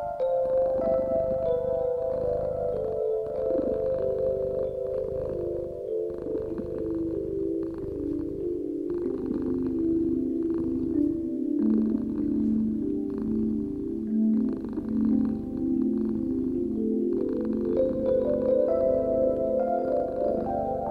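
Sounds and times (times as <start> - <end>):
soft chime-like music: 0.0 - 20.9.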